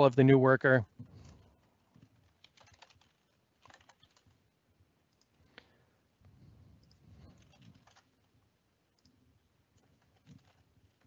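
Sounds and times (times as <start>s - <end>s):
soft keyboard typing: 1.4s - 4.4s, 5.1s - 5.4s, 6.8s - 11.0s.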